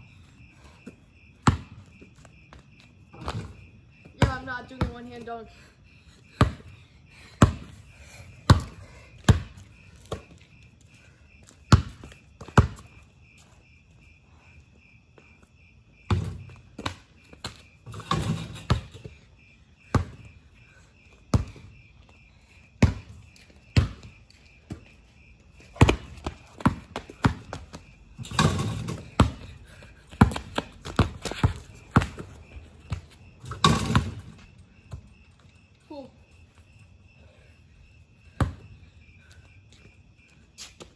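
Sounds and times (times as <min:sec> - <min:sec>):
crickets chirping: 0:00.0 - 0:40.9
basketball bouncing on concrete: 0:01.4 - 0:05.4, 0:06.3 - 0:06.7, 0:07.3 - 0:07.8, 0:08.4 - 0:10.4, 0:11.4 - 0:13.0, 0:16.1 - 0:19.2, 0:19.9 - 0:20.4, 0:21.2 - 0:21.8, 0:22.8 - 0:25.0, 0:25.6 - 0:35.2, 0:38.3 - 0:38.8
ball crashing on hoop: 0:28.2 - 0:29.4, 0:33.5 - 0:34.4.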